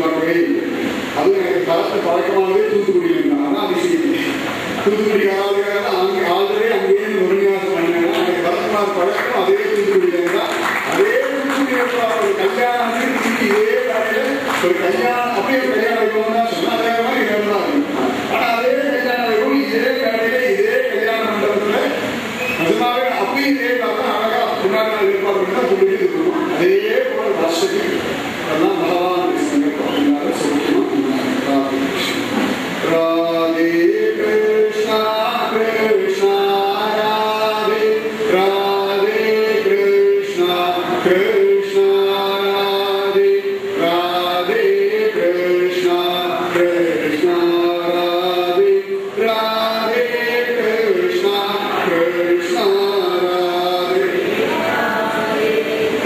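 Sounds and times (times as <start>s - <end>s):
man singing a slow chant: 32.8s - 56.0s.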